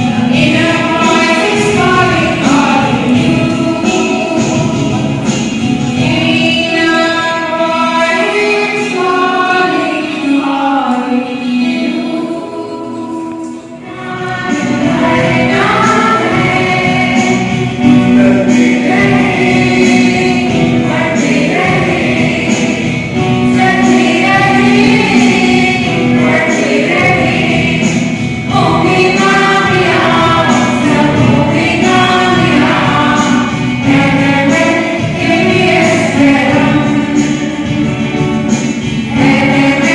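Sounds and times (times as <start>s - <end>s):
group of voices singing: 0.0s - 39.9s.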